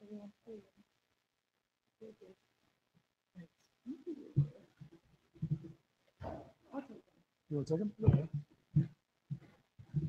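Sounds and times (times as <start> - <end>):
people talking quietly: 3.4 - 8.5.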